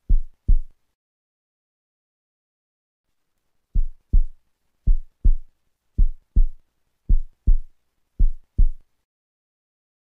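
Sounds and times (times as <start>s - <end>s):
heartbeat thumps: 0.0s - 0.7s, 3.8s - 8.8s.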